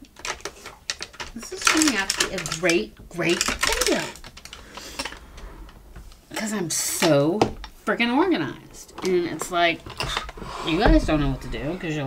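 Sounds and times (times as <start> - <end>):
makeup items clicking and rattling: 0.0 - 5.8.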